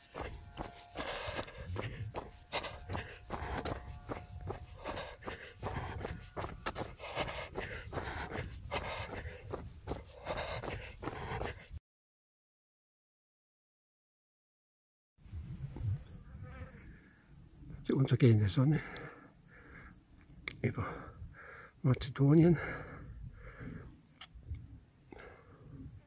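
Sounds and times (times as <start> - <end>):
running footsteps: 0.0 - 11.8.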